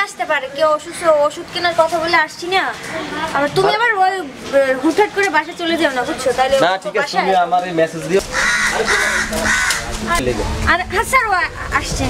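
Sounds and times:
crow cawing: 0:08.2 - 0:10.2.

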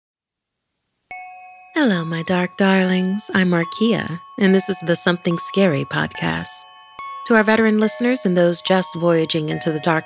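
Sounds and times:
bell-like chime: 0:01.1 - 0:10.0
person speaking: 0:01.8 - 0:06.6, 0:07.3 - 0:10.0.

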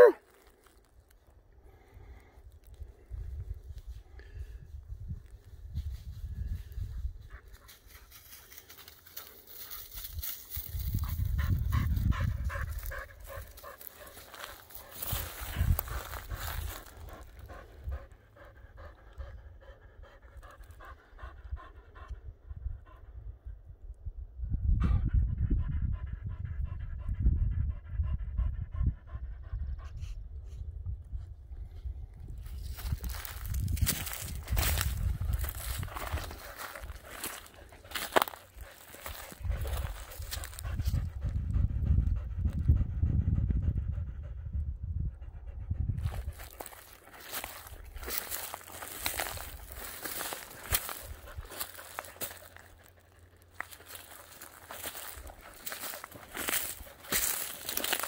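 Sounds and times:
small dog panting: 0:06.7 - 0:23.2, 0:24.8 - 0:30.6, 0:32.6 - 0:58.0.

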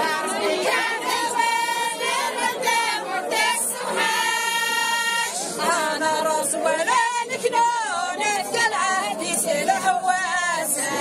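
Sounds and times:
women singing a long note: 0:00.0 - 0:11.0.

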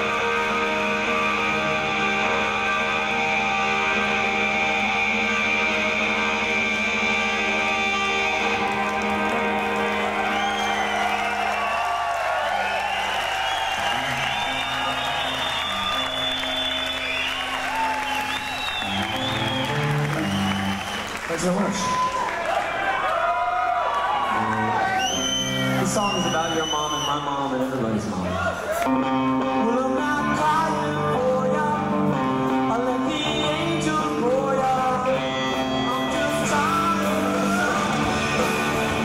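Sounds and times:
electric guitar chord ringing: 0:00.0 - 0:10.4
low guitar notes picked: 0:00.0 - 0:10.4
crowd cheering and whistling: 0:00.0 - 0:29.4, 0:32.8 - 0:39.0.

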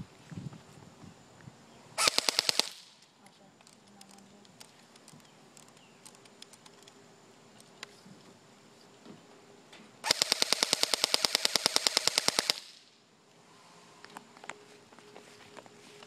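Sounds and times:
airsoft rifle full-auto burst: 0:02.0 - 0:03.0, 0:10.0 - 0:12.8.

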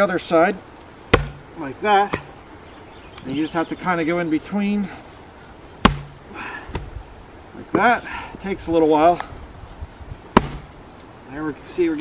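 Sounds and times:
axe striking log: 0:01.1 - 0:01.5, 0:05.8 - 0:07.0, 0:10.3 - 0:10.7.

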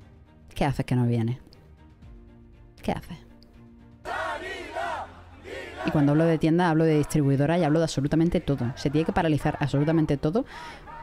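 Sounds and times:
crowd shouting in unison: 0:04.0 - 0:11.0.

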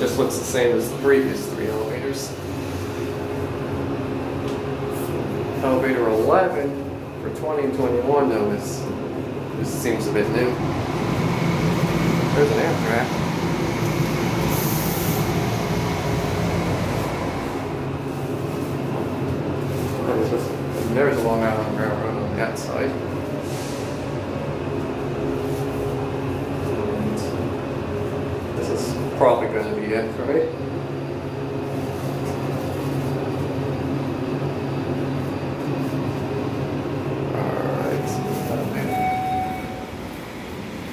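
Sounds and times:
elevator mechanical hum: 0:00.0 - 0:40.9
electronic arrival tone: 0:37.9 - 0:40.0.

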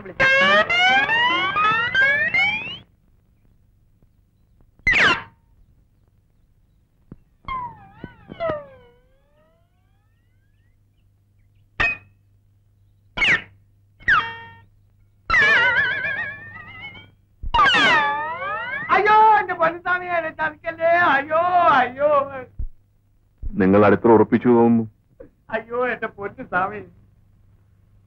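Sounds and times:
comic sliding pitch effects: 0:00.2 - 0:02.8, 0:07.5 - 0:10.0, 0:15.3 - 0:19.0.

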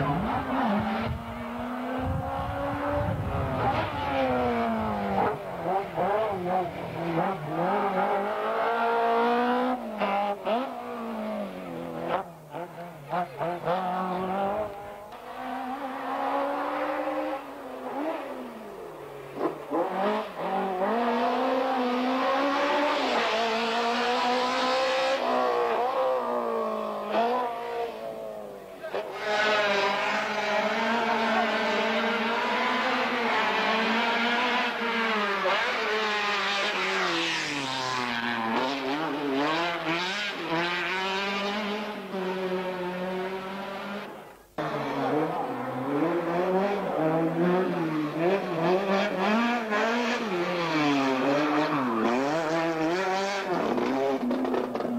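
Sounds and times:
racing car engines revving: 0:00.0 - 0:54.9.

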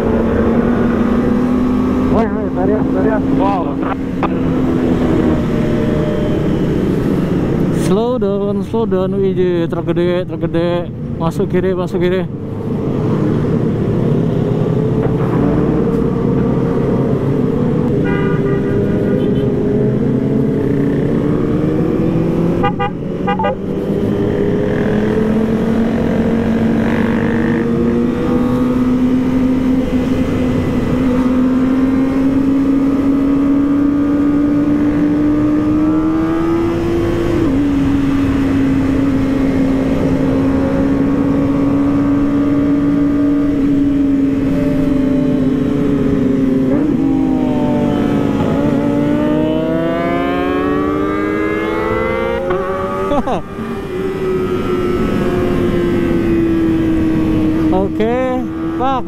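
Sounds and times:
motorcycle engine at high revs: 0:18.7 - 0:59.0.

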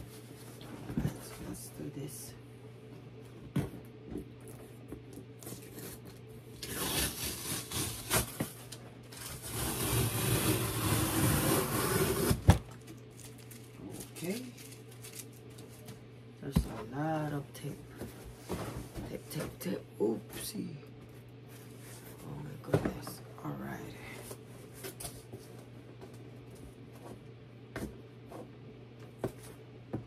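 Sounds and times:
low steady hum: 0:00.0 - 0:30.0
cardboard rubbing and scraping: 0:06.7 - 0:08.5, 0:09.2 - 0:12.6.

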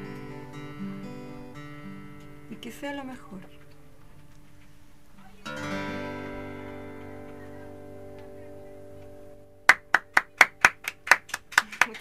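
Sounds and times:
acoustic guitar chord ringing: 0:00.0 - 0:12.0
hand claps: 0:09.7 - 0:12.0.

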